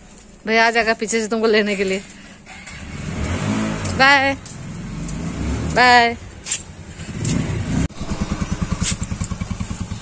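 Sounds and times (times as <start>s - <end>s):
vehicle engine running: 6.8s - 10.0s.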